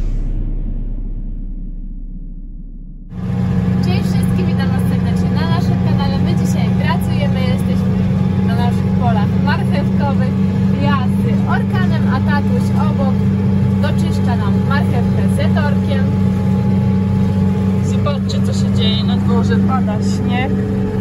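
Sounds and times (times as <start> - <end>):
tractor engine drone: 0.0 - 21.0.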